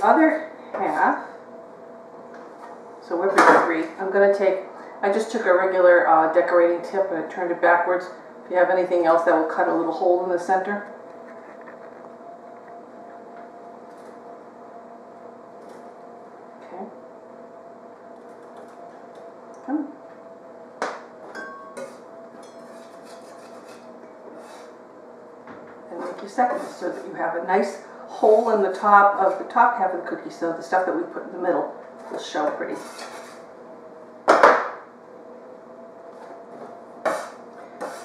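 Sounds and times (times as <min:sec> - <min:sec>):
metal spatula scraping countertop: 0:21.8 - 0:24.8, 0:26.0 - 0:27.2, 0:32.0 - 0:33.5, 0:37.0 - 0:38.0.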